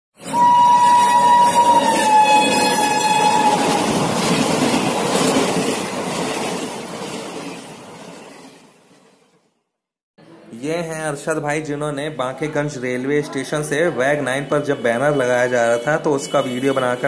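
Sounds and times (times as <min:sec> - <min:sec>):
train horn: 0:00.2 - 0:04.0
train coaches rumbling: 0:00.2 - 0:09.1.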